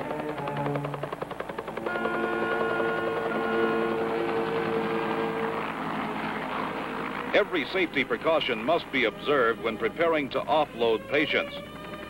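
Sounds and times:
helicopter rotor blades thumping: 0:00.0 - 0:09.0.

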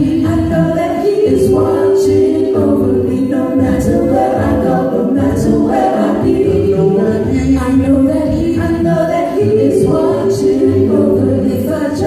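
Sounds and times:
vocal group singing in harmony: 0:00.0 - 0:12.0.

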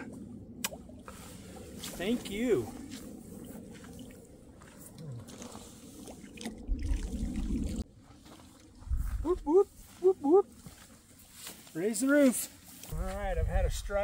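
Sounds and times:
low rumble: 0:00.0 - 0:07.9
man whooping: 0:09.2 - 0:10.6.

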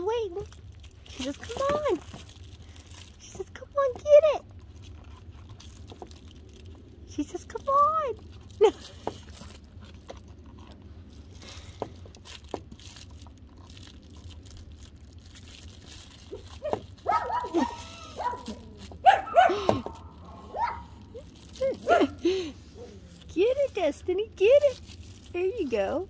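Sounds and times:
faint clicks and rustles: 0:00.0 - 0:26.0
puppies barking and yipping: 0:16.2 - 0:23.6.

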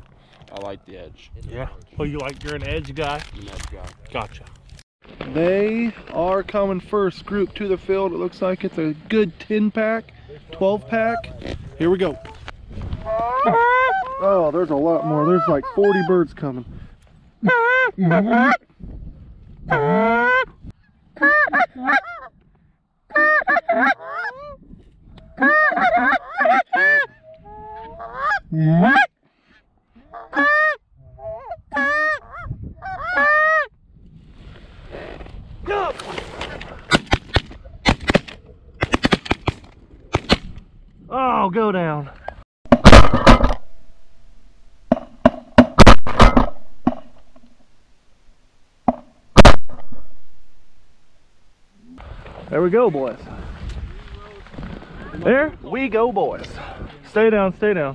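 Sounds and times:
geese honking: 0:13.1 - 0:16.3, 0:25.4 - 0:27.2
shotgun blasts: 0:42.7 - 0:44.1, 0:44.9 - 0:47.2, 0:49.4 - 0:50.8.

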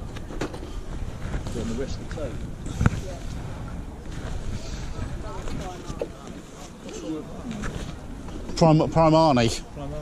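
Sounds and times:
faint voices talking: 0:00.0 - 0:10.0
wind buffeting microphone: 0:00.0 - 0:10.0.

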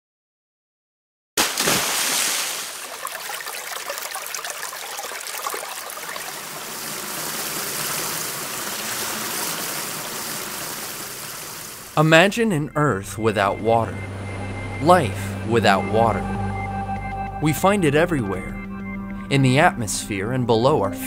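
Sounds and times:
water rushing over rocks: 0:01.4 - 0:12.0.

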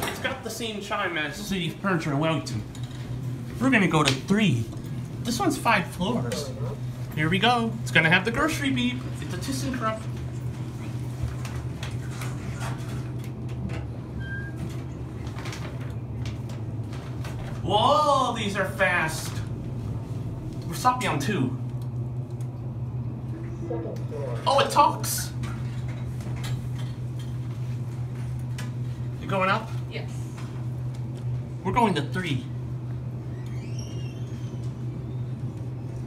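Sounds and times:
elevator hum: 0:00.0 - 0:36.0.

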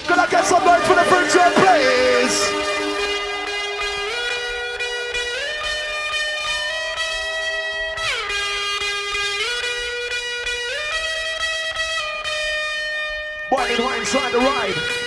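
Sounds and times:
drum and bass music: 0:00.0 - 0:11.1, 0:13.5 - 0:15.0
distorted synth lead: 0:00.0 - 0:12.8.

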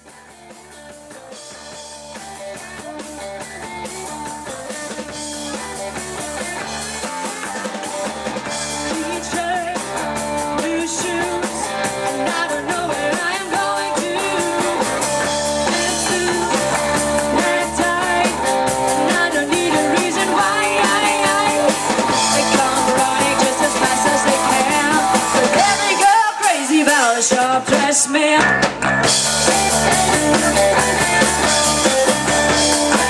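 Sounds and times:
live rock band playing: 0:00.0 - 0:33.0.

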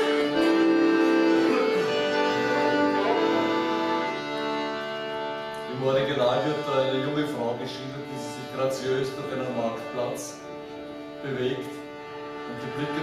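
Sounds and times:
accordion: 0:00.0 - 0:13.0
fiddle: 0:00.0 - 0:13.0.

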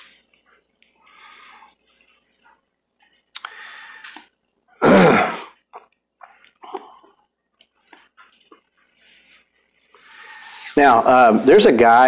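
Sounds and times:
man clearing his throat: 0:04.8 - 0:05.6.

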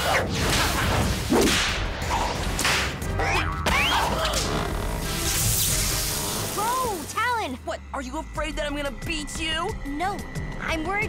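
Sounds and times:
background music: 0:00.0 - 0:11.0
cartoon laser beam sizzle: 0:05.0 - 0:07.2.

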